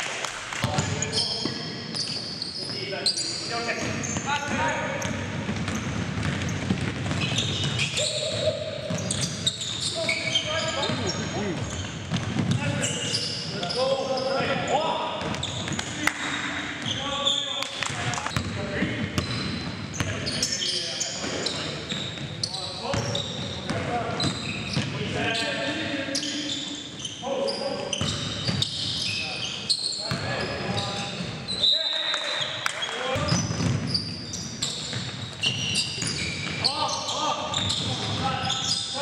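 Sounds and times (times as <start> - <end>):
sneakers squeaking on hardwood: 0.6 - 39.0
basketball bouncing on gym floor: 3.8 - 12.9, 15.2 - 15.9, 17.8 - 20.2, 33.2 - 36.6
players calling out: 7.2 - 18.4.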